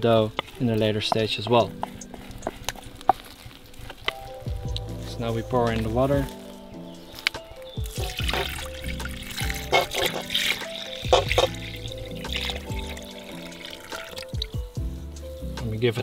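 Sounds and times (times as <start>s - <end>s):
water pouring into metal bowl: 0.0s - 14.8s
background music: 0.0s - 16.0s.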